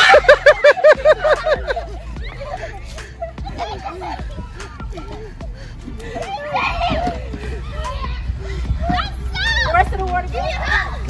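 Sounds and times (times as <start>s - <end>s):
children shouting and squealing: 0.0s - 11.0s.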